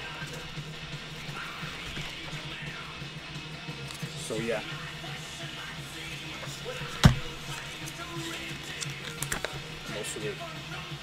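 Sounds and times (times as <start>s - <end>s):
paper rustling and clicks: 6.4s - 9.6s
sharp knock on cassette case: 7.0s - 7.4s.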